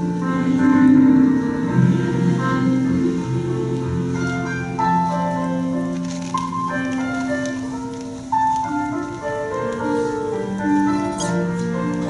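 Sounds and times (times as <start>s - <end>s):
keyboard sustained chords: 0.0s - 12.0s.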